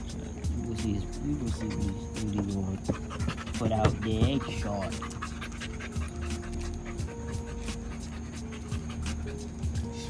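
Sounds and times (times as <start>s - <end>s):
background music with held notes: 0.0s - 10.0s
dog panting: 0.0s - 10.0s.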